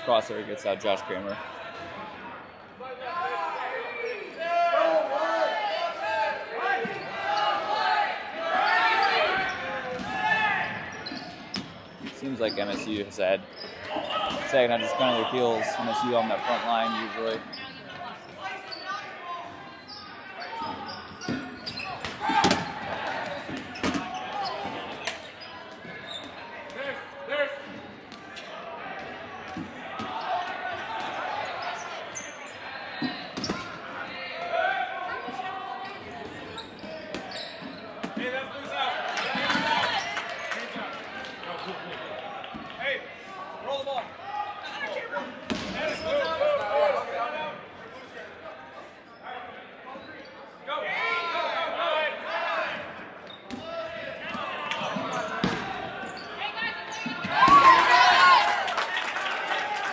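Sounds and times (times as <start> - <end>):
players calling out: 0.0 - 47.4
dodgeballs smacking players and floor: 9.2 - 13.2, 20.6 - 26.9, 27.6 - 31.4, 32.9 - 33.9, 36.0 - 41.4, 45.4 - 46.2, 52.7 - 56.1, 56.9 - 58.3.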